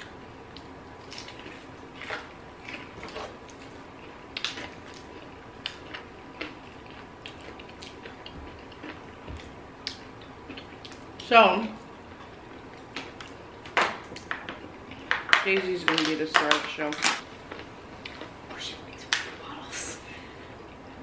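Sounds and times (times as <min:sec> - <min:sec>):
chewing: 0:00.5 - 0:11.1, 0:11.8 - 0:15.3, 0:17.4 - 0:19.2.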